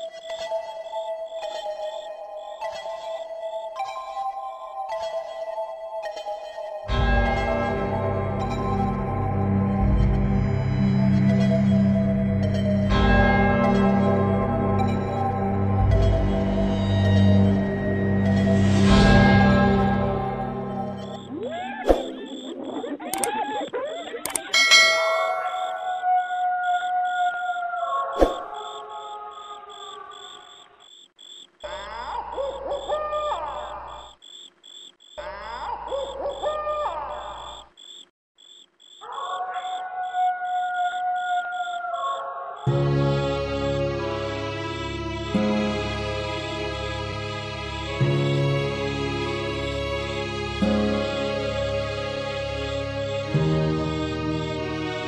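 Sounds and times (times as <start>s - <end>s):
crickets chirping: 0.0s - 13.1s, 13.7s - 55.0s
tense background music: 0.0s - 27.2s, 42.6s - 55.0s
bell-like chime ringing: 24.4s - 26.1s.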